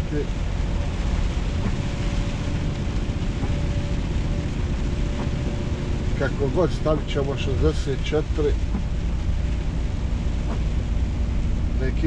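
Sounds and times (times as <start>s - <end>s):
truck engine and tyres droning: 0.0s - 12.0s.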